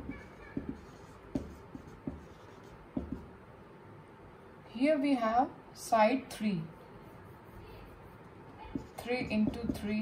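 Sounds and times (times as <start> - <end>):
marker pen writing on whiteboard: 0.0 - 3.3, 7.2 - 10.0.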